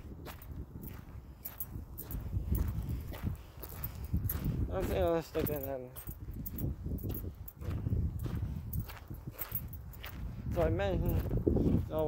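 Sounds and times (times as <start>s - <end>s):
footsteps walking outdoors: 0.0s - 12.0s.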